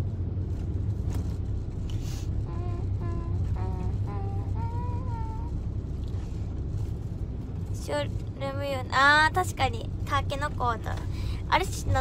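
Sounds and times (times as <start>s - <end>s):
car engine and road noise: 0.0s - 12.0s
woman's high-pitched voice: 7.8s - 12.0s.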